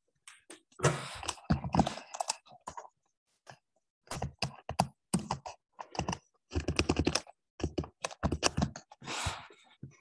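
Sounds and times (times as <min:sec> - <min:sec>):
typing on keyboard: 0:04.1 - 0:08.9.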